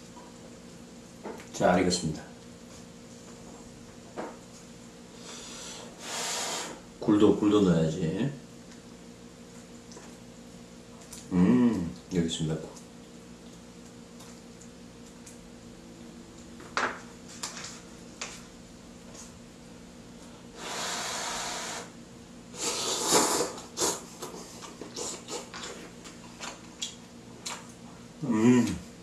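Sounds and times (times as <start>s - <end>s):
faint steady hum: 0.0s - 29.0s
person slurping noodles: 20.6s - 21.8s, 22.6s - 24.0s.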